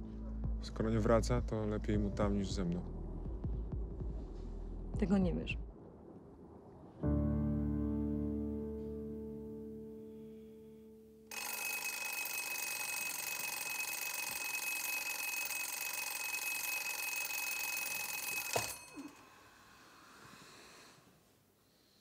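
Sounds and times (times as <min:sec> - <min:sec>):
soft piano: 0:07.0 - 0:11.2
alarm clock ringing: 0:11.3 - 0:19.2
alarm clock switch knock: 0:18.2 - 0:18.8.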